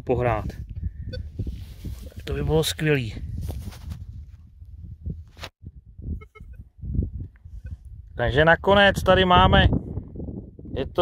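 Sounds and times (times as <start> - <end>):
rustling handling noise: 3.4 - 4.0.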